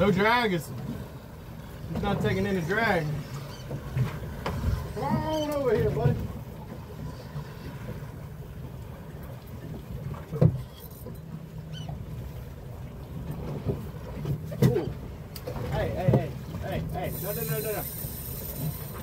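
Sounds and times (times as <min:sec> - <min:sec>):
water slapping boat hull: 0:00.0 - 0:19.0.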